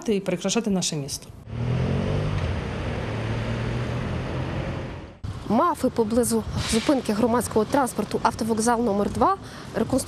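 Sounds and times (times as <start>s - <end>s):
road noise hum: 1.0s - 10.0s
passing car engine and tyres: 1.4s - 5.5s.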